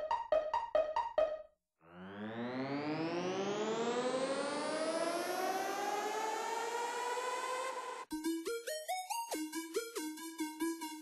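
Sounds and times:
rising synthesizer tone: 0.0 - 8.1.

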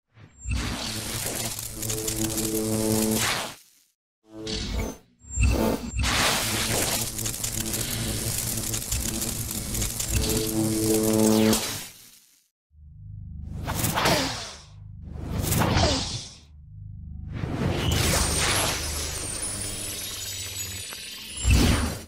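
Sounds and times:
crackling electric discharge: 0.5 - 4.0, 6.0 - 12.5.

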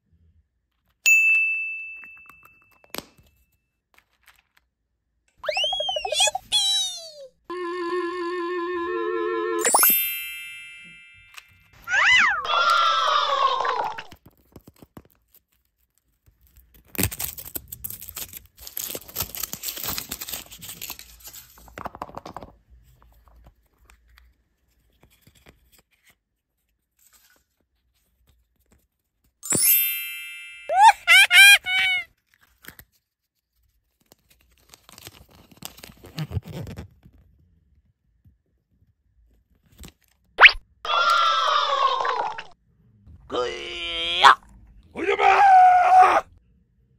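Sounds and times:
ringing ding: 1.1 - 2.7, 9.6 - 11.6
up-and-down pitch glide: 5.4 - 6.4, 7.5 - 9.6
wavering tone: 5.4 - 6.4, 7.5 - 10.5
short high cartoon-like notes: 5.4 - 10.3
bright chime: 9.6 - 11.7, 29.4 - 30.7
falling voice-like cry: 11.9 - 14.1, 40.9 - 42.6, 45.0 - 46.3
plastic and foil clicks: 14.2 - 22.4.

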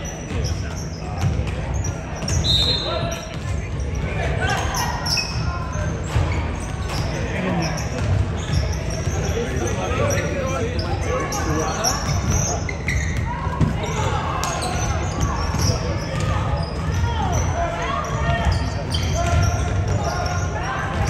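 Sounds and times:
voices: 0.0 - 21.0
basketballs bouncing on hardwood floor: 0.2 - 2.5, 3.1 - 4.4, 6.0 - 9.4, 12.0 - 20.1.

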